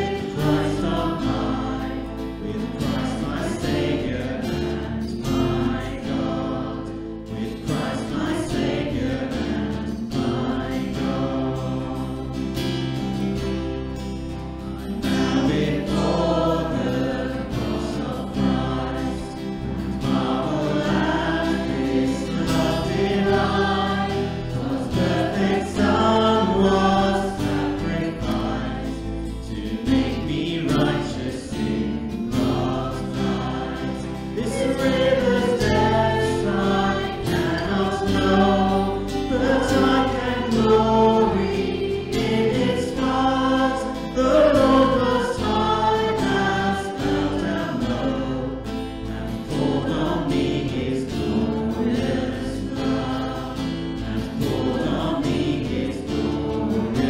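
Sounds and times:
acoustic guitars: 0.0 - 57.0
bass guitar: 0.0 - 57.0
group singing a hymn: 0.0 - 57.0.

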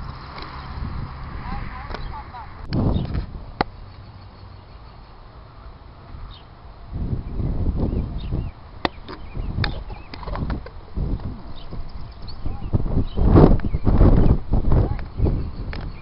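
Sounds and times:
low rumbling: 0.0 - 6.3.

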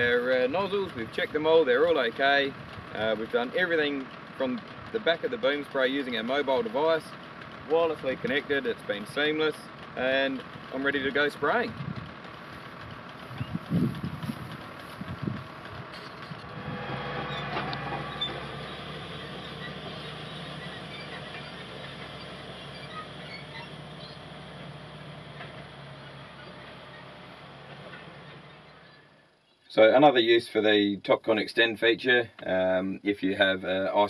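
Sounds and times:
tractor engine running: 0.0 - 30.0
low thumps: 13.4 - 22.4.

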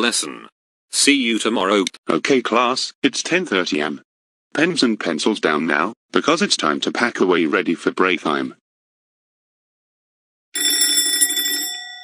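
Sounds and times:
school bell ringing: 10.6 - 12.0.

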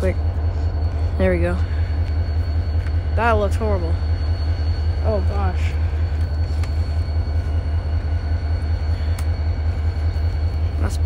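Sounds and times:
distant diesel train rumble: 0.0 - 11.0.

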